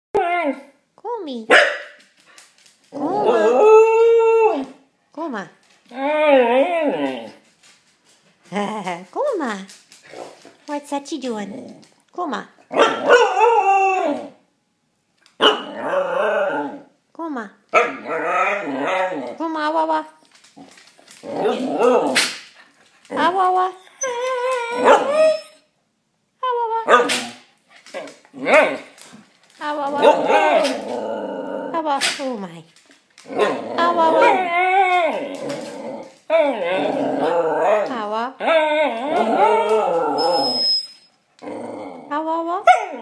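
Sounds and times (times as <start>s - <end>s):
dog howling: 3.0s - 4.8s, 5.9s - 7.5s, 12.9s - 14.4s, 15.6s - 16.9s, 17.9s - 19.4s, 21.2s - 22.2s, 23.8s - 25.6s, 29.8s - 31.8s, 33.2s - 41.0s.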